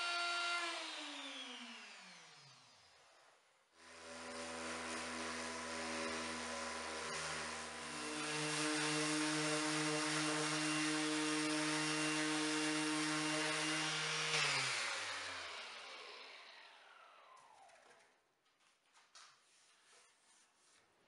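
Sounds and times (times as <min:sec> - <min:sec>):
orbital sander sanding wood: 0:04.2 - 0:16.6.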